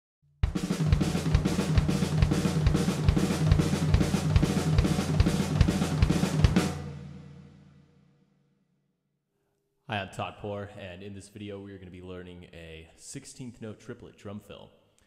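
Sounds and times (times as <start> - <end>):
kick drum strikes: 0.4 - 6.8
snare drum hits: 0.4 - 6.9
cymbals and hi-hat wash: 0.5 - 7.0.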